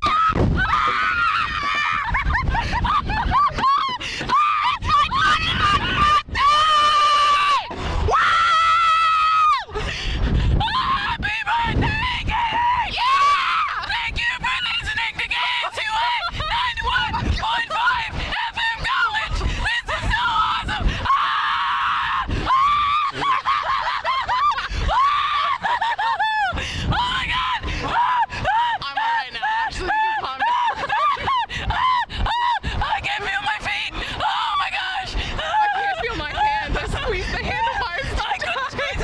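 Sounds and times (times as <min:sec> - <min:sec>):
women screaming: 0:00.0 - 0:09.8, 0:10.6 - 0:39.0
wind on microphone: 0:00.0 - 0:39.0
women laughing: 0:00.8 - 0:06.2, 0:14.6 - 0:21.4, 0:22.5 - 0:26.6, 0:27.8 - 0:33.5, 0:35.1 - 0:39.0.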